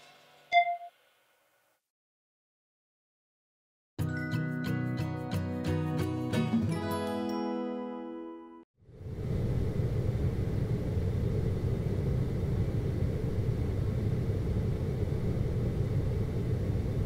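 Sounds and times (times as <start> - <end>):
low rumbling background noise: 8.9 - 17.0.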